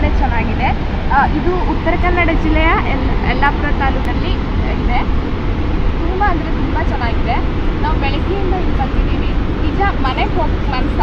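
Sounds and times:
woman talking: 0.0 - 5.1, 6.0 - 11.0
steady low rumble: 0.0 - 11.0.

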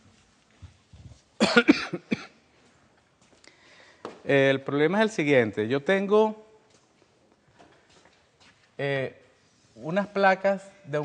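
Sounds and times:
person coughing: 1.4 - 2.4.

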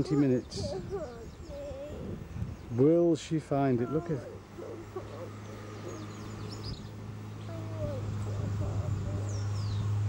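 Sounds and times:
birds chirping: 0.0 - 10.0
steady low hum: 0.0 - 10.0.

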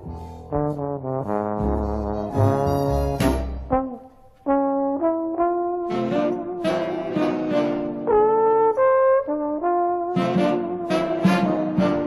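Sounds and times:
jazz trombone playing: 0.0 - 12.0.

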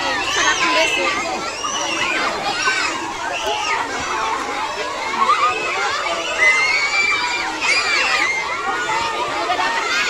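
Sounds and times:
children shouting and cheering: 0.0 - 10.0.

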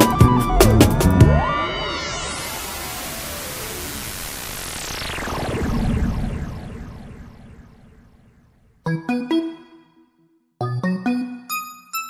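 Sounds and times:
electronic whoosh: 0.2 - 8.8
background music: 8.9 - 12.0.

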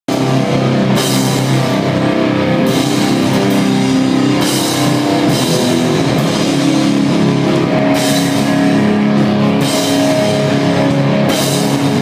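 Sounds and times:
distorted electric guitars: 0.0 - 12.0
drum kit: 0.1 - 12.0.

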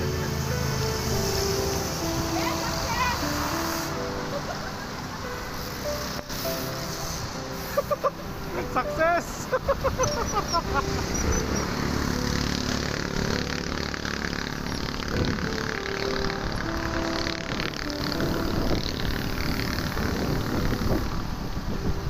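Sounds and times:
background music: 0.0 - 22.0
wind and road noise: 0.0 - 22.0.

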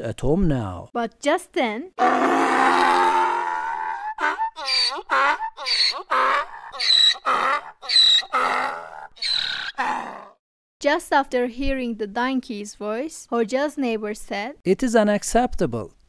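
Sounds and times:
donkey braying: 2.0 - 10.4.

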